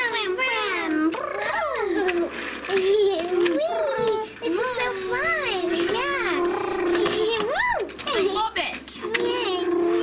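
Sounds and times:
toy cars clicking on wooden floor: 0.0s - 10.0s
high-pitched voice imitating car engine: 0.4s - 8.4s, 9.0s - 10.0s.

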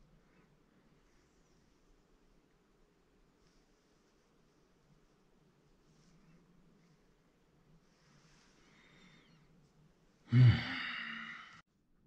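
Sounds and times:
man humming hmm: 10.3s - 11.6s
man sighing: 10.3s - 11.6s.

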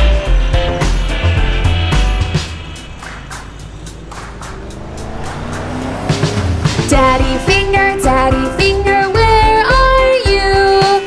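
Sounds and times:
background music: 0.0s - 11.0s
cartoon engine revving: 2.3s - 9.5s.

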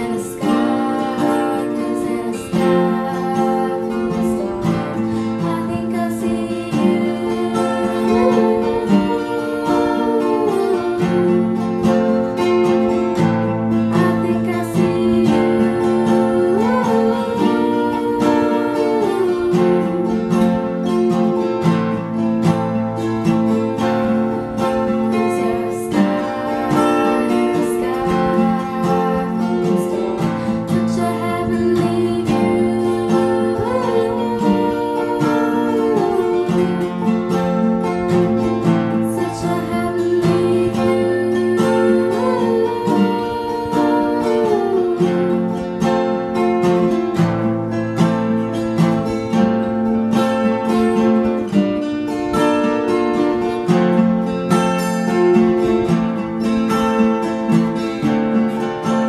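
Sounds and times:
acoustic guitars strummed and picked: 0.0s - 59.0s.

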